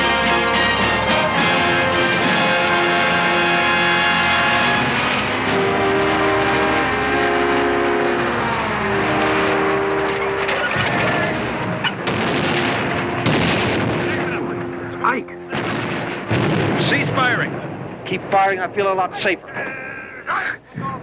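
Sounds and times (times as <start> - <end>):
sustained music chords: 0.0 - 18.8
booming explosions: 0.0 - 19.1
artillery fire: 10.6 - 14.8, 15.4 - 18.4.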